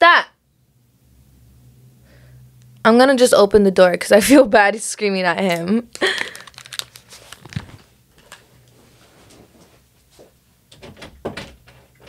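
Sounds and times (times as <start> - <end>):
headphones handling noise: 5.5 - 9.5.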